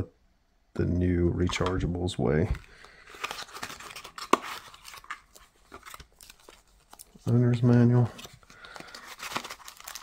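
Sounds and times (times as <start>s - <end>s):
paper rustling and crinkling: 2.4s - 10.0s.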